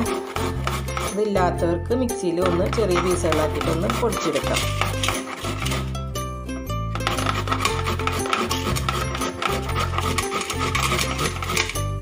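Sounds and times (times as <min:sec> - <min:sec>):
cassava grating on metal grater: 0:00.0 - 0:01.4, 0:02.3 - 0:06.1, 0:06.9 - 0:12.0
background music with bass line: 0:04.6 - 0:12.0.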